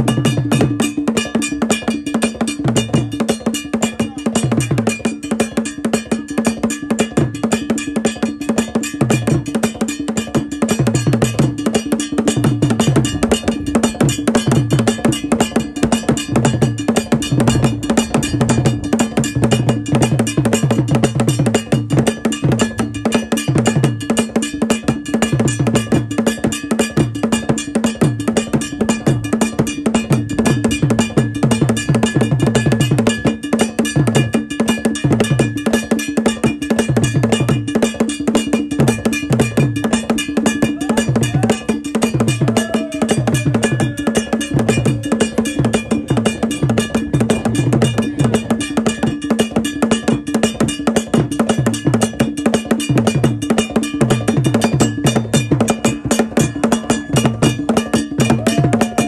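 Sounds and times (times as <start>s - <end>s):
bell repeating pattern: 0.0s - 59.0s.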